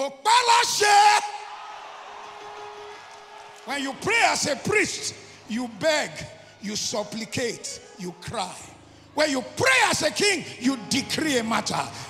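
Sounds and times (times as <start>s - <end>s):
man shouting: 0.0s - 1.5s.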